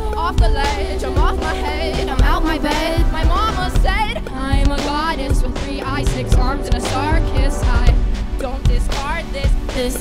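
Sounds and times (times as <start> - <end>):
bass: 0.0 - 10.0
drum kit with strong kick drum: 0.0 - 10.0
keyboard: 0.0 - 10.0
wavering gliding melodic line: 0.0 - 10.0.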